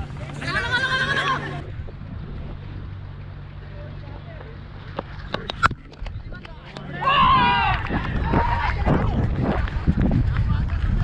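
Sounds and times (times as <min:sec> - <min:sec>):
wind buffeting microphone: 0:00.0 - 0:03.6, 0:04.8 - 0:11.0.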